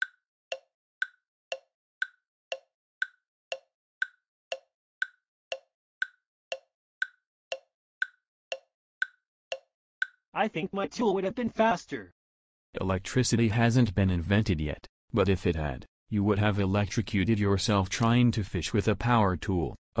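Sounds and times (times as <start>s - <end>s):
clock ticking: 0.0s - 10.2s.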